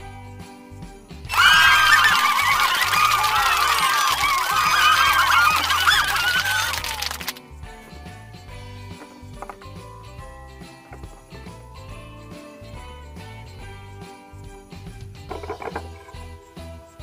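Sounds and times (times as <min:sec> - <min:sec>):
quiet background music: 0:00.0 - 0:17.0.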